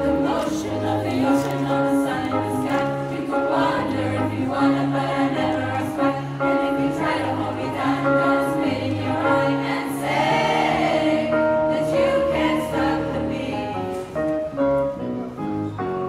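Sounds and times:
girls' choir singing show tune: 0.0 - 14.1.

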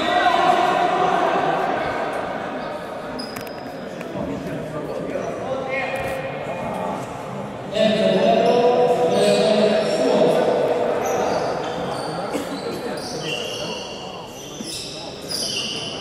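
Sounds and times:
players' voices in echoing hall: 0.0 - 16.0
shoes squeaking on wooden court: 2.6 - 3.9, 11.0 - 16.0.

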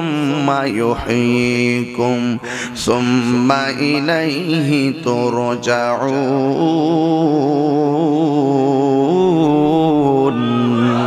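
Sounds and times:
man chanting a sermon: 0.0 - 11.0
short breaths: 2.4 - 2.8.

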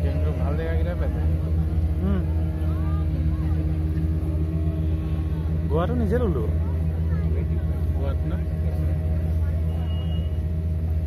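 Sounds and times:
boat engine droning: 0.0 - 11.0
faint voices: 0.0 - 11.0.

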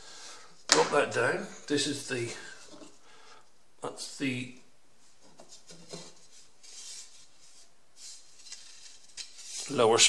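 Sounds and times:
wood strips rubbing and scraping: 5.2 - 10.0.

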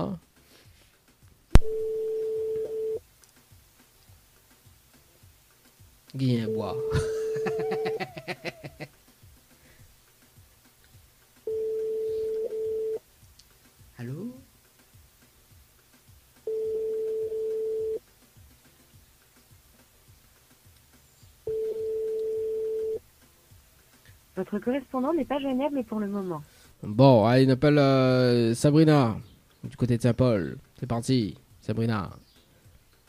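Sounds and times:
telephone ringback tone: 1.6 - 3.0, 6.5 - 8.0, 11.5 - 13.0, 16.5 - 18.0, 21.5 - 23.0
phone line click: 21.5 - 23.0.

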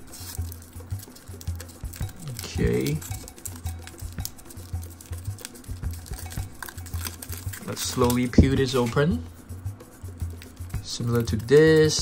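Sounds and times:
foil wrapper crinkling: 0.0 - 9.0, 10.3 - 12.0.

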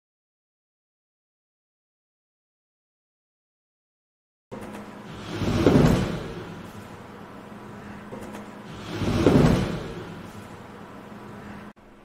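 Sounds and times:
steady lab hum: 4.5 - 12.0
rushing swell of robot movement: 8.7 - 10.6.

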